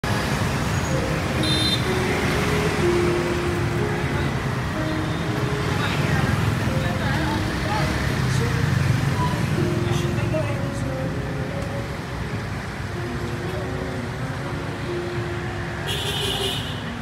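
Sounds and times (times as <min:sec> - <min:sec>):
motorbike and road traffic: 0:00.0 - 0:17.0
simple melody of held notes: 0:00.8 - 0:15.9.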